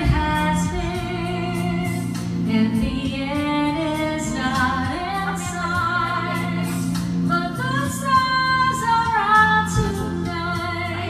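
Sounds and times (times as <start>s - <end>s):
instrumental backing music: 0.0s - 11.0s
woman singing with vibrato: 0.0s - 11.0s.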